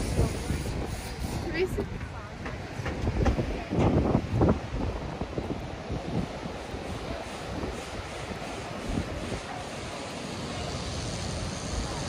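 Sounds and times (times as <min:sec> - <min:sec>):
people's voices: 0:00.0 - 0:12.0
surf washing: 0:00.0 - 0:12.0
wind rumbling on microphone: 0:00.0 - 0:12.0.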